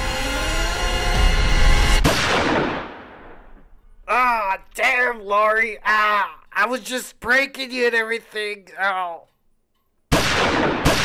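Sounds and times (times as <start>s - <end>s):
pistol shot ringing out: 10.1s - 11.0s.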